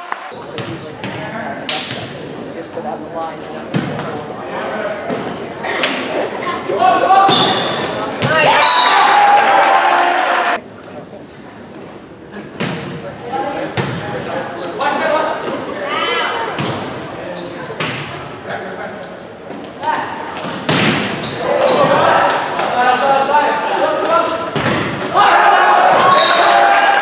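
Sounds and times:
sneaker squeaks on court floor: 0:03.4 - 0:08.8, 0:14.4 - 0:18.1, 0:19.0 - 0:22.8
shouting and cheering: 0:08.3 - 0:10.6, 0:25.1 - 0:27.0
volleyball hits: 0:20.4 - 0:22.7, 0:24.4 - 0:26.6
players calling out: 0:21.1 - 0:27.0.

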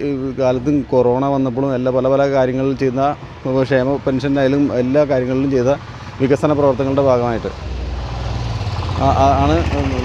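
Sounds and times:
man speaking: 0:00.0 - 0:07.6, 0:09.0 - 0:10.0
vehicle engine rumble: 0:00.0 - 0:10.0.

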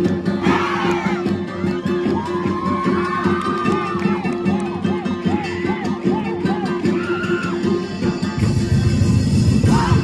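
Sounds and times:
crowd shouting together: 0:00.4 - 0:01.3, 0:02.3 - 0:07.6, 0:09.6 - 0:10.0.

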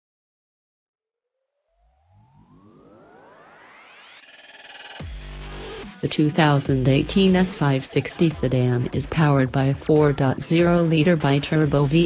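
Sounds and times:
synthesized rising tone: 0:01.3 - 0:06.0.

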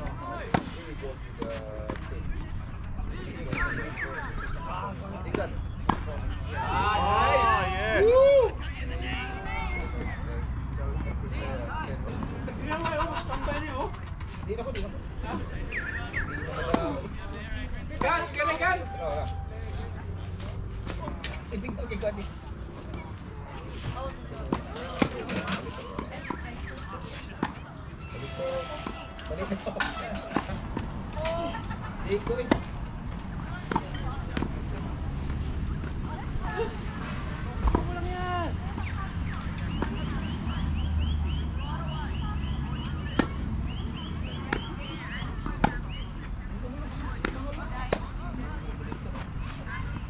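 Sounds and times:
voices talking: 0:00.0 - 0:50.0.

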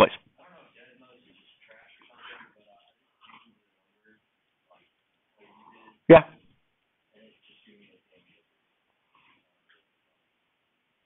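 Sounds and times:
faint distant voice: 0:07.1 - 0:08.5.

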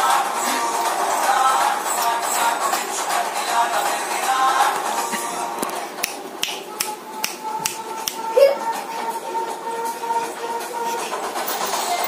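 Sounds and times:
faint held tone in song: 0:00.0 - 0:12.0
sharp snaps on a beat: 0:05.7 - 0:08.3.

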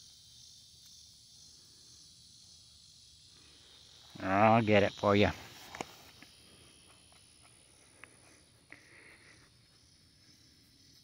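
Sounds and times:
faint high-pitched hiss: 0:00.0 - 0:11.0.

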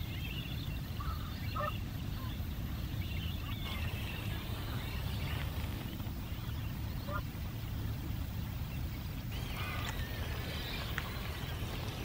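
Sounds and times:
birds chirping: 0:00.0 - 0:12.0
lower bird calls: 0:00.0 - 0:12.0.

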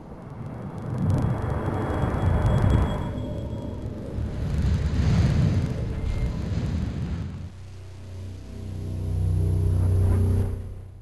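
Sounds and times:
low sustained musical drone: 0:01.2 - 0:06.7, 0:07.5 - 0:11.0
deep rumbling with hiss: 0:03.9 - 0:10.9.

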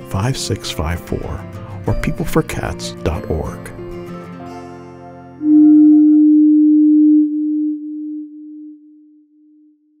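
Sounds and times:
pure electronic tone with echoes: 0:05.4 - 0:09.6.

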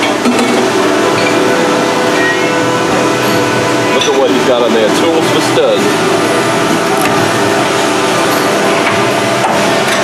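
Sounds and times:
machine drone with hiss: 0:00.0 - 0:10.0.

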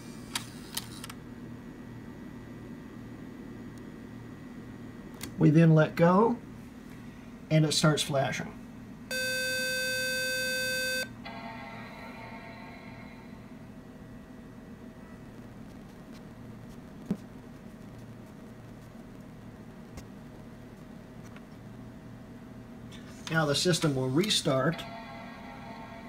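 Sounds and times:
computer long beep: 0:09.1 - 0:13.0.

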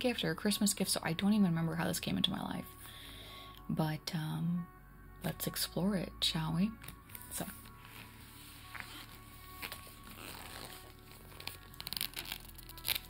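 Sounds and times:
plastic cover crinkling: 0:06.9 - 0:13.0.

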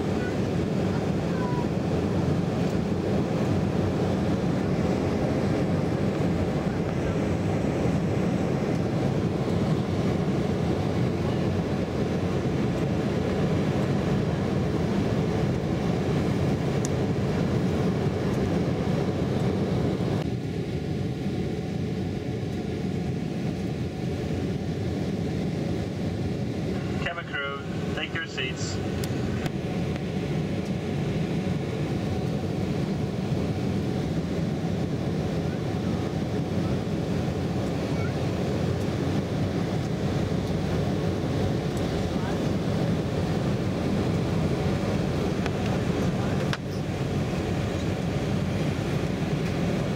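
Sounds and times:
jet engine rumble: 0:00.0 - 0:49.9
person speaking: 0:26.9 - 0:28.8.

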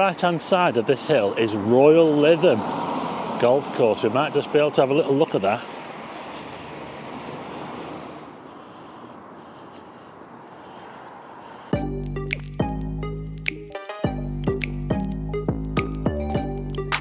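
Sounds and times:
street and traffic noise: 0:00.0 - 0:13.4
background music with steady bass: 0:11.8 - 0:17.0.

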